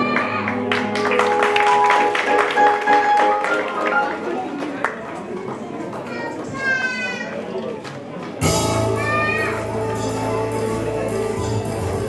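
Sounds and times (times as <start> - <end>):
audience chatter: 0.0 - 12.0
child calling out: 6.2 - 7.4, 8.9 - 9.8.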